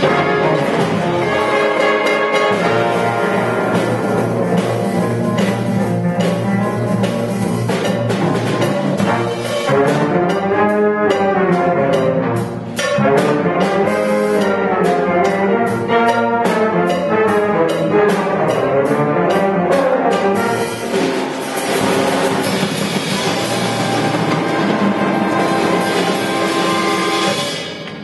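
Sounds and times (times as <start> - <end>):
trumpets and trombones: 0.0 - 6.7, 8.3 - 27.5
jazz big band playing: 0.0 - 28.0
steady drum kit beat: 0.0 - 28.0.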